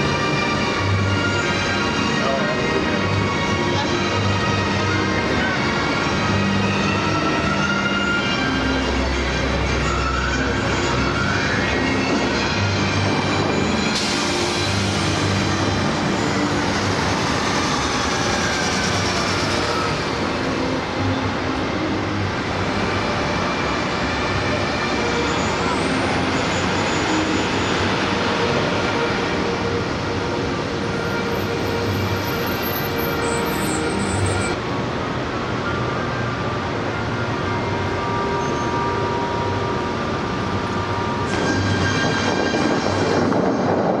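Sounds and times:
music playing: 0.0s - 34.9s.

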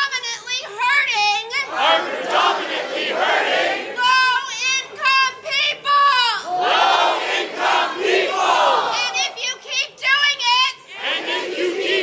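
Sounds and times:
crowd chanting: 1.6s - 4.1s, 6.4s - 9.2s, 10.9s - 12.0s
woman shouting loudly: 4.0s - 6.5s, 8.9s - 10.9s.

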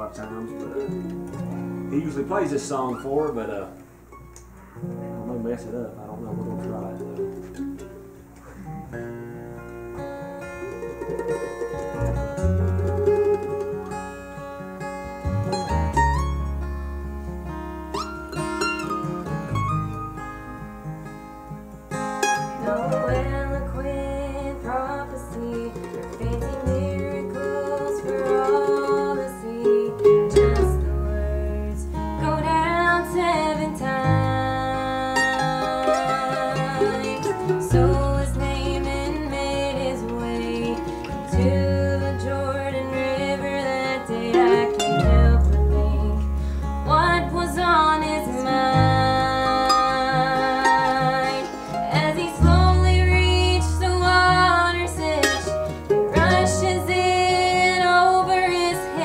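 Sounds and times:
acoustic guitars: 0.0s - 59.0s
mandolin: 0.0s - 59.0s
deep bass notes: 14.9s - 21.0s, 30.2s - 35.1s, 37.6s - 43.6s, 44.8s - 50.2s, 52.3s - 58.1s.

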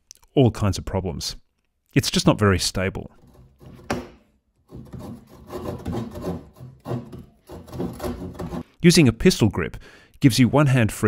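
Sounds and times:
saw cutting wood: 4.7s - 8.6s.

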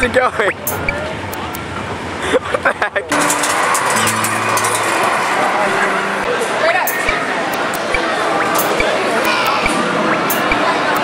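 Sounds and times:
busy amusement arcade din: 0.0s - 11.0s
game machines humming: 0.0s - 11.0s.

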